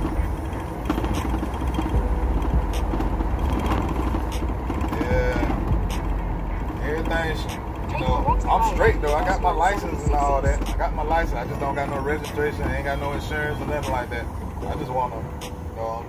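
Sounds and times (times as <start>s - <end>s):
road and engine rumble in van: 0.0s - 16.0s.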